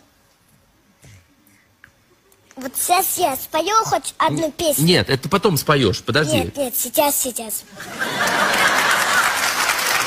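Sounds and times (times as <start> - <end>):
audience laugh track: 7.7 - 9.9.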